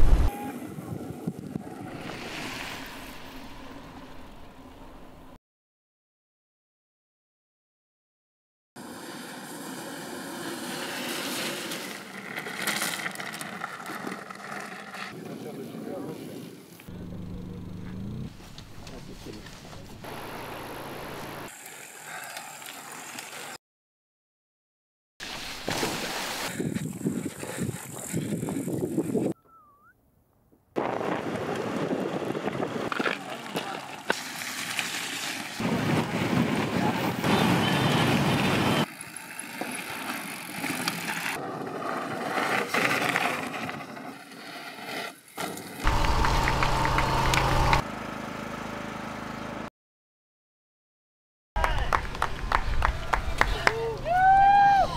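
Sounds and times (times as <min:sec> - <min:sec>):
outdoor noise: 0:00.0 - 0:05.4, 0:08.8 - 0:23.6, 0:25.2 - 0:49.7
mountain bikes riding on dirt: 0:08.8 - 0:23.6, 0:25.2 - 0:29.3, 0:30.8 - 0:47.8
riders' voices: 0:15.2 - 0:20.1, 0:32.5 - 0:34.1.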